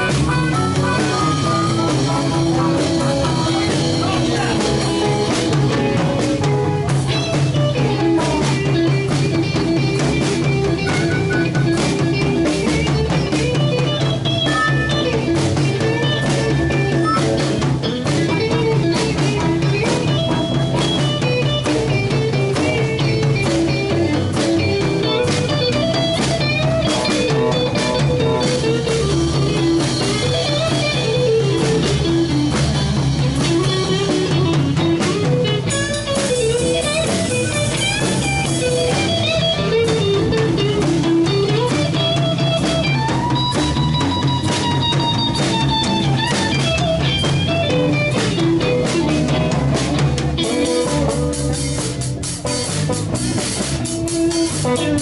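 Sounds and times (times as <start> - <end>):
drum kit with cymbals: 0.0 - 55.0
electric guitar lines: 0.0 - 55.0.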